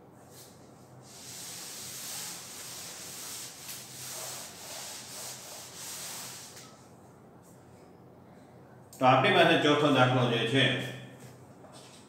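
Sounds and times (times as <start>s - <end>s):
cloth wiping blackboard: 0.2s - 6.8s.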